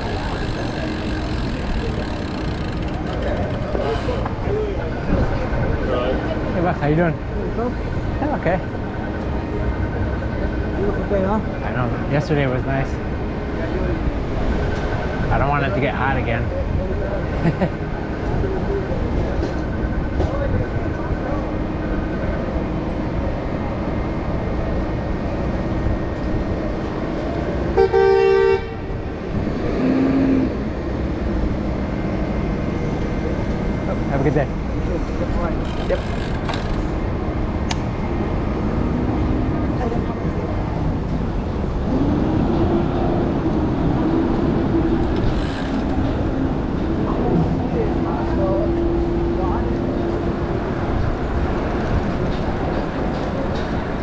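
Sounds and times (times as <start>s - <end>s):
city traffic rumble: 0.0s - 54.0s
vehicle horn honking: 27.8s - 28.8s.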